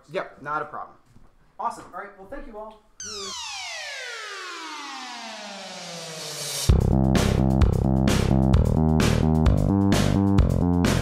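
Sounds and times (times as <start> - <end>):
electronic tone sweeping down: 3.0 - 6.7.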